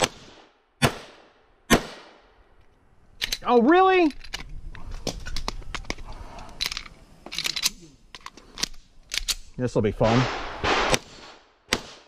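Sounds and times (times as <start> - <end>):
pistol reload clicks: 6.6 - 9.5.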